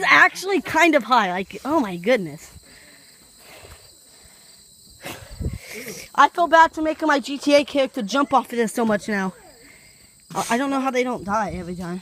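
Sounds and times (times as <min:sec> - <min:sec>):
crickets trilling: 0:00.0 - 0:12.0.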